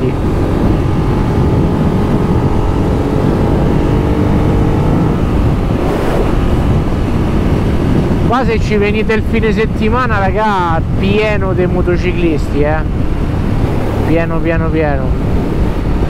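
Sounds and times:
wind rushing over microphone: 0.0 - 16.0.

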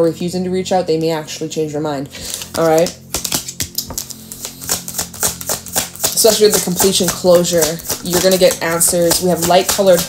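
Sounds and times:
soft background music: 0.0 - 10.0
cards being shuffled: 2.2 - 10.0.

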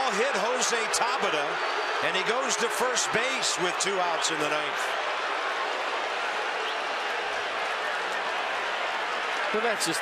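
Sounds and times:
crowd clapping: 0.0 - 10.0
crowd voices: 0.0 - 10.0.

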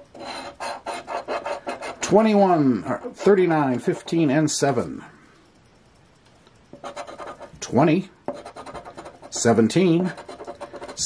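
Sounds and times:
coin scratching lottery ticket: 0.0 - 2.3, 6.8 - 7.5, 8.3 - 11.0.

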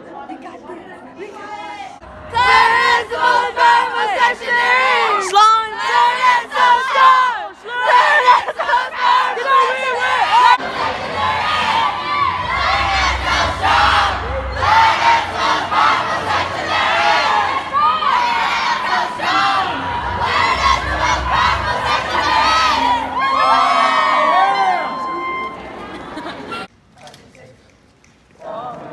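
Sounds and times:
crowd shouting and cheering: 1.2 - 26.7.

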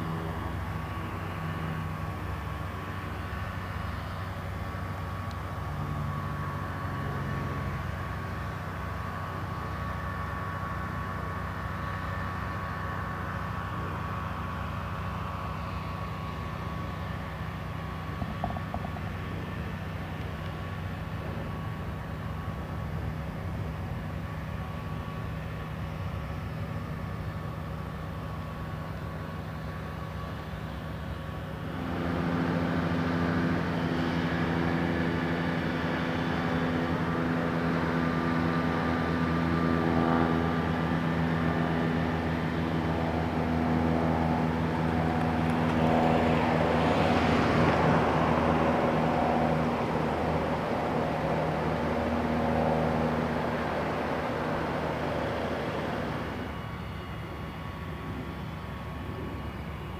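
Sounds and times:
motor engine humming: 0.0 - 59.9.

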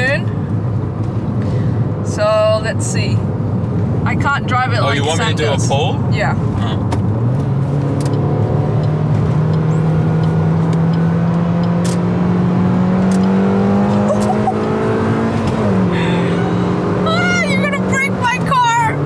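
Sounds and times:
car engine accelerating hard: 6.4 - 19.0.

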